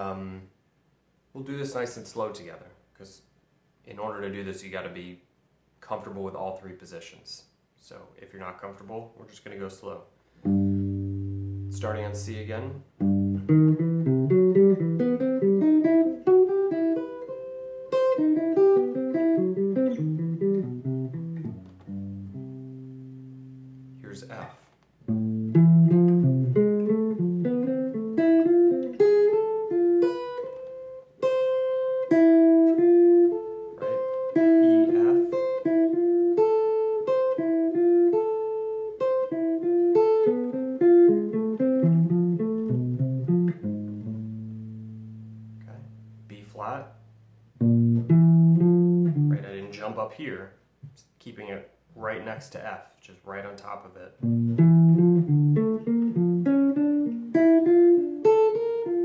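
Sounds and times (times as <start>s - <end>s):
electric jazz guitar arpeggios: 10.4s - 24.2s, 25.0s - 46.2s, 47.6s - 49.8s, 54.2s - 59.0s.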